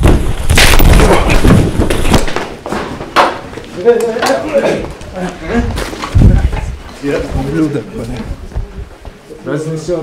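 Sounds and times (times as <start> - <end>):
armchair knocked over: 0.0 - 3.4.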